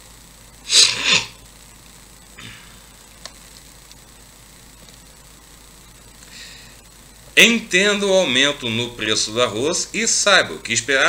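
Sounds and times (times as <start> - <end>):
man sneezing: 0.7 - 1.4.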